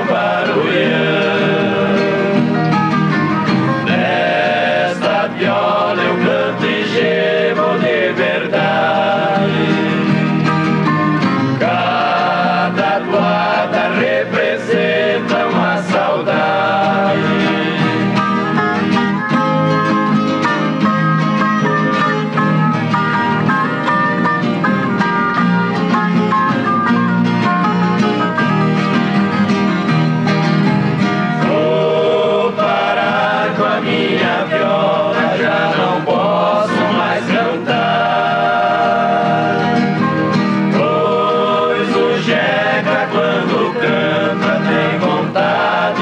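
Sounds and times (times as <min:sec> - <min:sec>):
folk guitars plucked and strummed: 0:00.0 - 0:46.0.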